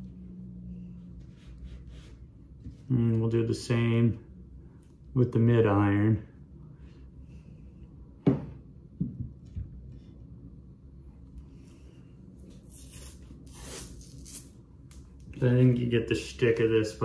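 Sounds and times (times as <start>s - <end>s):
tape tearing off roll: 12.6s - 14.6s.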